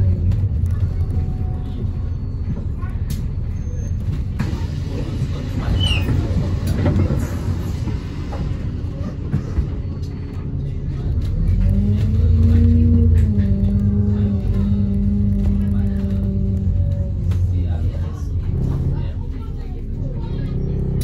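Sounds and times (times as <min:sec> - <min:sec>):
bus diesel engine: 0:00.0 - 0:21.0.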